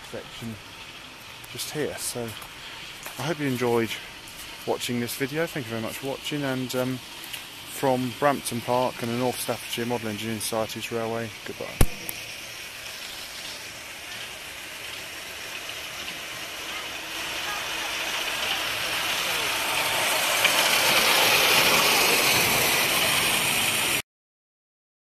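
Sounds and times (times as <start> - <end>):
miniature train running on track: 0.0 - 24.0.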